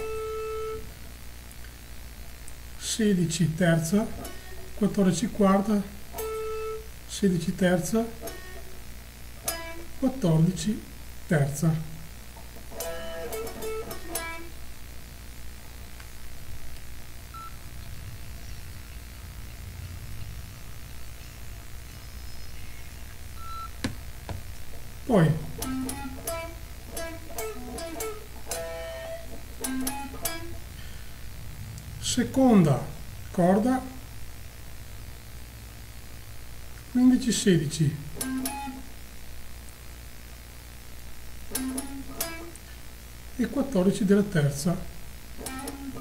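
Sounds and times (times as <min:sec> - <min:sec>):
guitar amp hum: 0:00.0 - 0:46.0
high electronic beep: 0:23.4 - 0:23.8
clean electric guitar notes: 0:25.4 - 0:33.4.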